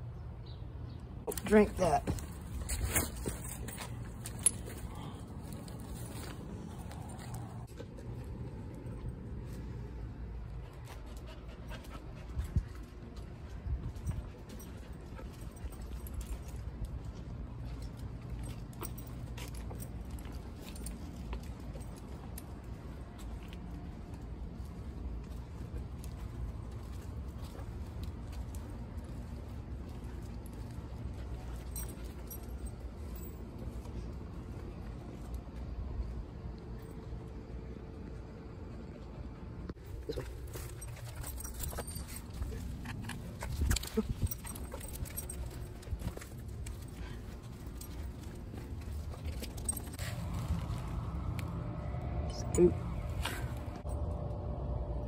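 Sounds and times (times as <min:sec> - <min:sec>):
dog on a leash: 0:01.2 - 0:55.0
steady low rumble: 0:02.0 - 0:55.0.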